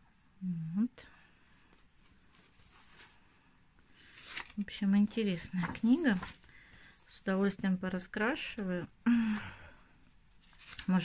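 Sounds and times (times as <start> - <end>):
woman speaking: 0.4 - 1.1, 4.6 - 6.3, 7.1 - 9.0
woman sighing: 9.0 - 10.0.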